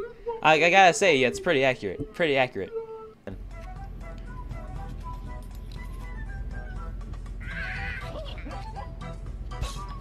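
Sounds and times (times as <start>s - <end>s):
background music: 0.0s - 10.0s
wavering high-pitched cry: 7.4s - 8.6s.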